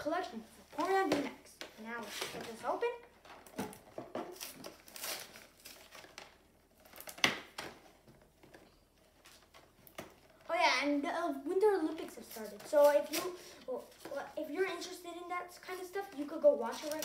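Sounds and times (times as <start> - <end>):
child's voice: 0.0 - 3.0, 10.4 - 17.0.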